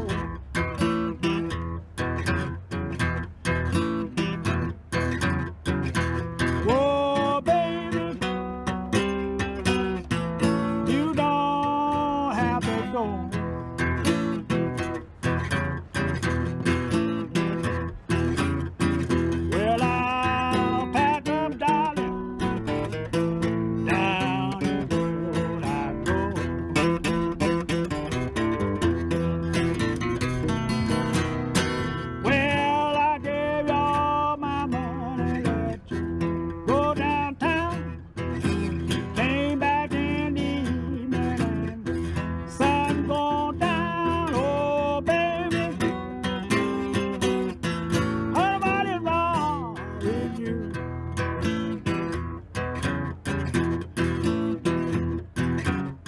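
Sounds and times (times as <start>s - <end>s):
acoustic guitar picking blues: 0.0s - 56.0s.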